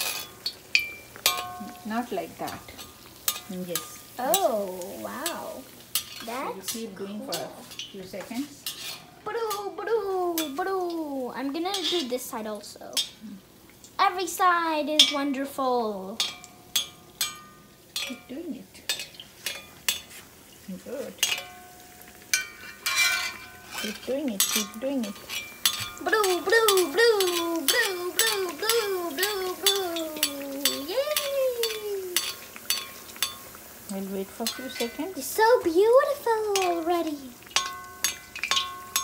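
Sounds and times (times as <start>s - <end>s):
metal skimmer clinking on pan: 0.0s - 9.7s, 16.2s - 20.2s, 21.0s - 39.0s
hot oil splashing: 0.0s - 39.0s
oil sizzling: 0.0s - 39.0s.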